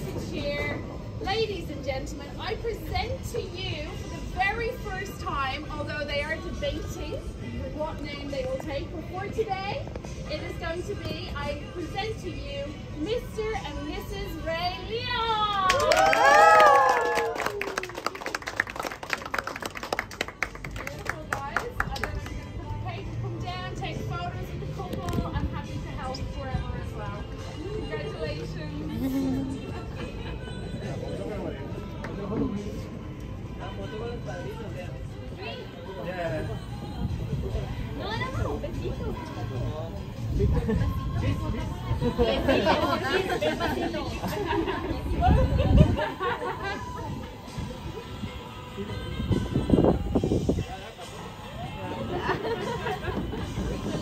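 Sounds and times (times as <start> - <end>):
overlapping chatter of guests: 0.0 - 54.0
people clapping: 15.5 - 22.6
people cheering: 15.6 - 19.6.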